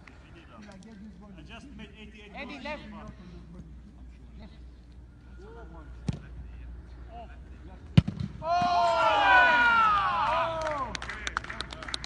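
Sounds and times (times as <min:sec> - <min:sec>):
football kicked with a thud: 0:08.0 - 0:08.8
voices shouting and cheering: 0:08.4 - 0:11.0.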